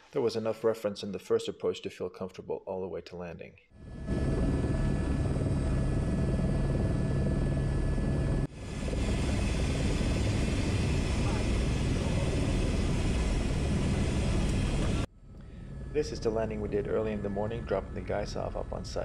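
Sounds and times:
helicopter turbine and rotors: 3.8 - 19.0.

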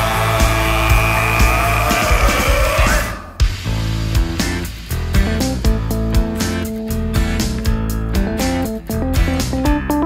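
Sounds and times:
rock band guitar and drums: 0.0 - 10.0.

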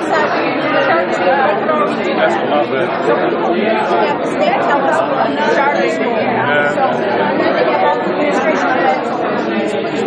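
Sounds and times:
background chatter: 0.0 - 10.0
people talking close by: 0.0 - 10.0.

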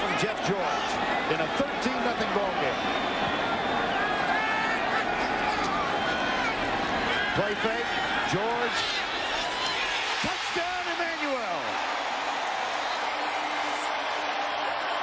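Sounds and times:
crowd shouts: 0.0 - 15.0
stadium crowd din: 0.0 - 15.0
commentator speaking: 10.2 - 11.8.

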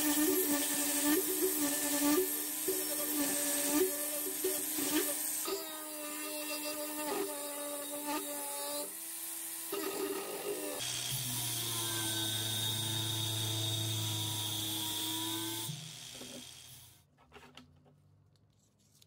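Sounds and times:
angle grinder grinding metal: 0.0 - 17.0.

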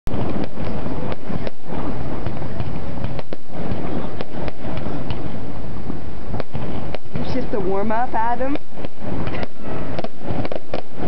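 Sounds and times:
fireworks crackling and banging: 0.1 - 11.0.

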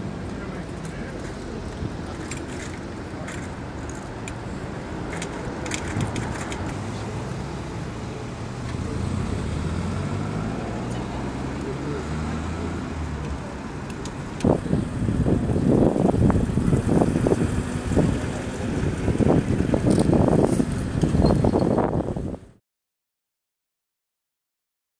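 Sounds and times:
vehicle engine idling: 12.8 - 22.4.

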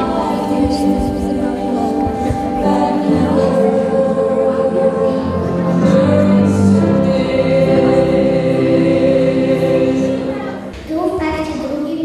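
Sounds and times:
choir singing long held notes: 0.0 - 10.7.

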